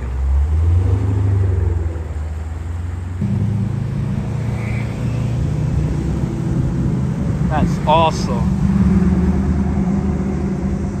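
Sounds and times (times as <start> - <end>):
car exhaust rumble driving past: 0.0 - 11.0.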